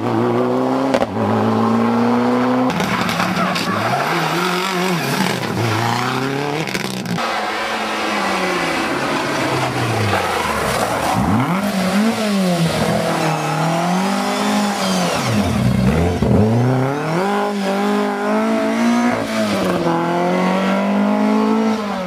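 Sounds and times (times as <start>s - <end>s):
rally car engine revving: 0.0s - 22.0s.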